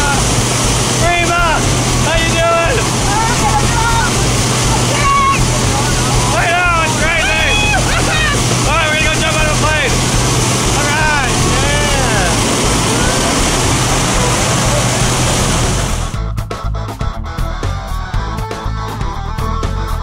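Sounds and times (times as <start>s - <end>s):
plane engine and propeller drone: 0.0s - 16.2s
people shouting and whooping: 3.1s - 8.5s.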